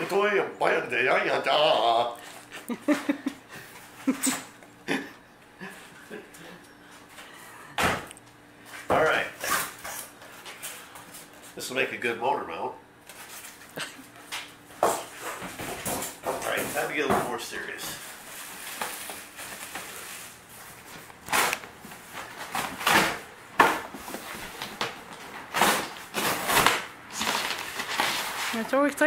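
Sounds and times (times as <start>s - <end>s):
plastic bag crinkling: 24.7s - 28.8s
styrofoam rubbing: 25.6s - 28.9s.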